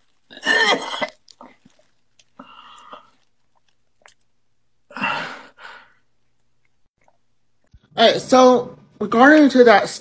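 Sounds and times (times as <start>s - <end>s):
person sighing: 4.9s - 6.0s.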